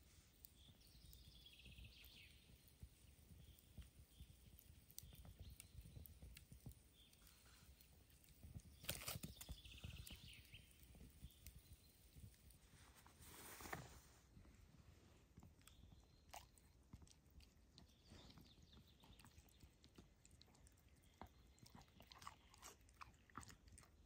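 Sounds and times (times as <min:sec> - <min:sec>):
wood fire crackling: 0:00.0 - 0:19.1.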